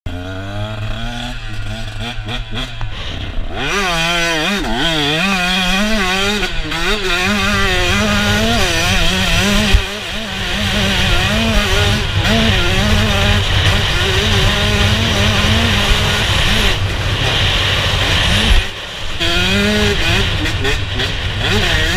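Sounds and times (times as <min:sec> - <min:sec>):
two-stroke motorcycle engine revving: 0:00.1 - 0:21.9.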